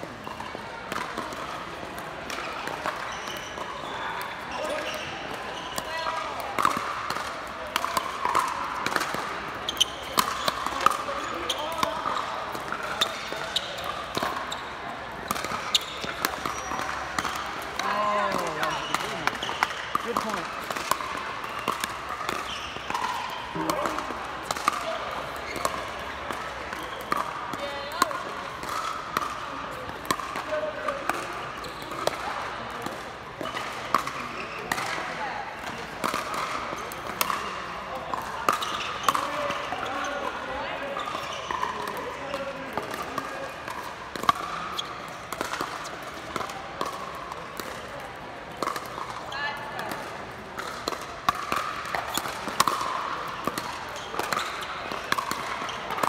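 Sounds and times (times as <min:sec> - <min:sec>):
ball bouncing on hard court: 0:00.2 - 0:49.2, 0:49.8 - 0:56.0.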